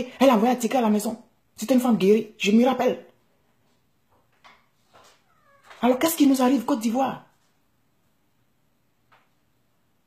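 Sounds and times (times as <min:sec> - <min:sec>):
faint small sounds: 0:03.1 - 0:06.3.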